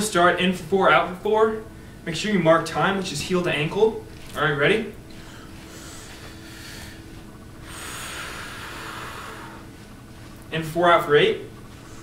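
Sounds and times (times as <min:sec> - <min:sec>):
people breathing deeply: 0:05.1 - 0:09.7.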